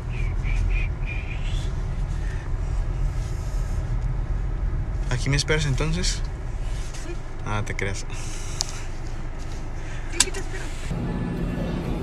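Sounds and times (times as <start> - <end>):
car engine running inside cabin: 0.0 - 12.0.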